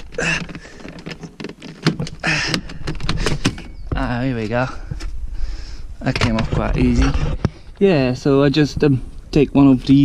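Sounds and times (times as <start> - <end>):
plastic trim panel clicking and rattling: 0.0 - 3.8.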